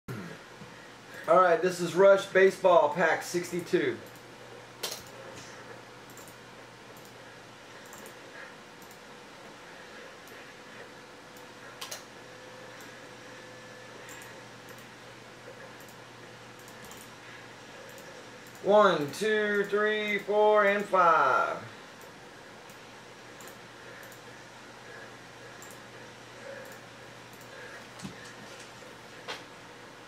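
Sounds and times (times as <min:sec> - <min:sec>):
computer mouse clicks: 0:03.5 - 0:05.2, 0:06.1 - 0:07.2, 0:07.8 - 0:08.2, 0:08.8 - 0:09.0, 0:11.3 - 0:12.1, 0:14.0 - 0:14.9, 0:15.6 - 0:16.0, 0:16.6 - 0:17.1, 0:17.8 - 0:20.9, 0:23.4 - 0:24.3, 0:25.5 - 0:25.9, 0:26.5 - 0:28.4.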